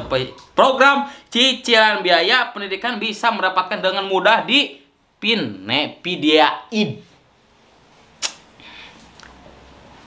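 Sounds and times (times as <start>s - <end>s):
sharp click: 8.2s - 8.4s.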